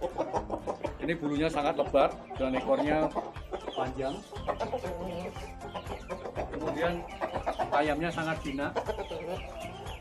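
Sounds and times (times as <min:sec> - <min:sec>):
chickens clucking: 0:00.0 - 0:10.0.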